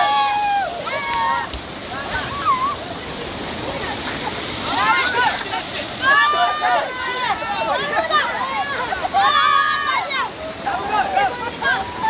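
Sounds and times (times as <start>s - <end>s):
stream water rushing over rocks: 0.0s - 12.0s
child shouting: 6.0s - 10.3s.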